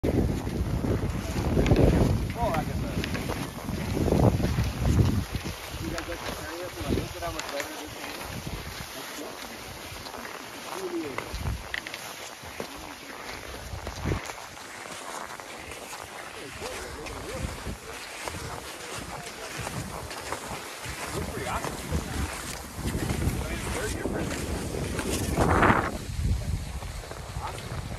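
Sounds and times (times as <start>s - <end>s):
wind gusting on microphone: 0.0s - 8.9s, 11.2s - 11.8s, 13.4s - 14.6s, 16.4s - 27.9s
skis gliding on snow: 0.1s - 27.9s.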